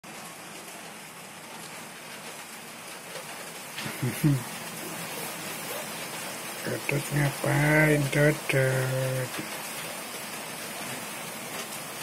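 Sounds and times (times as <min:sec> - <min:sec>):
steady hiss: 0:00.1 - 0:12.0.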